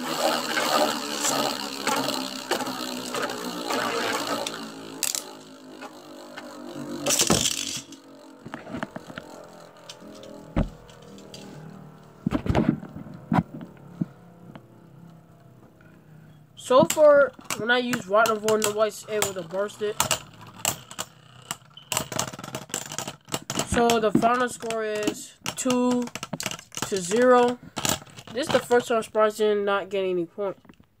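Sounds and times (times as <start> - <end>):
spinning tops clashing: 0.0 - 11.6
spinning tops whirring: 0.0 - 12.9, 16.6 - 27.6.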